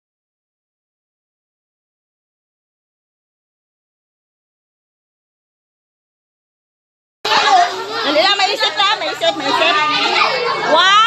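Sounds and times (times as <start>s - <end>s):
women chattering and calling out: 7.3s - 11.0s.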